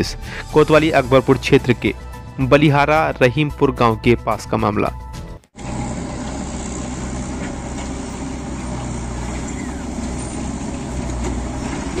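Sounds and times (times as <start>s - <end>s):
diesel engine running: 5.6s - 12.0s.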